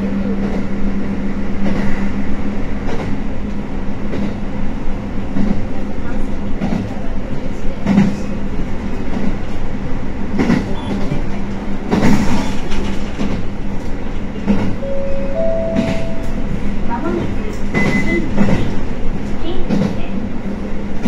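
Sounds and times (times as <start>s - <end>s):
railcar drive hum: 0.0s - 21.0s.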